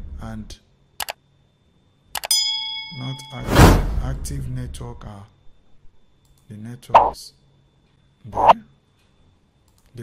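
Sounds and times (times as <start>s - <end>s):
bell-like ding: 2.3s - 3.8s.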